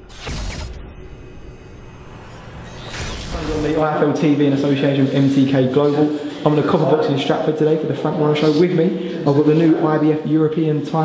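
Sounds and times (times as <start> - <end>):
whoosh: 0.0 - 4.4.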